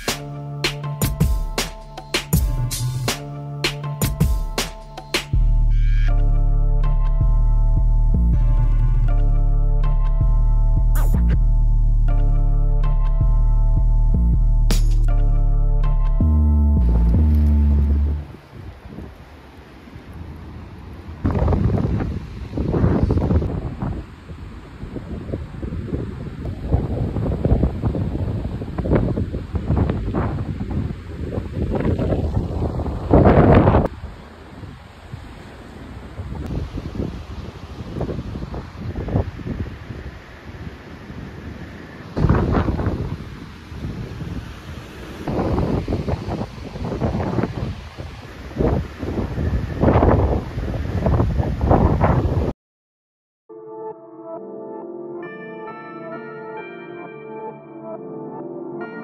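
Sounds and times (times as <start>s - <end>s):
choppy lake water: 18.4s - 51.9s
wind buffeting microphone: 20.0s - 52.5s.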